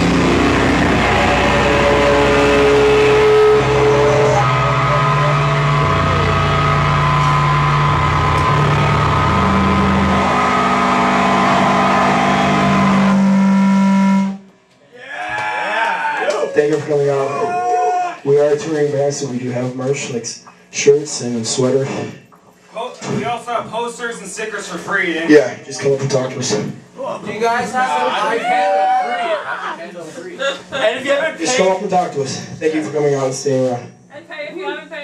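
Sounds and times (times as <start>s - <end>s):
distorted electric guitar and bass: 0.0s - 14.5s
high steady tone: 0.0s - 14.5s.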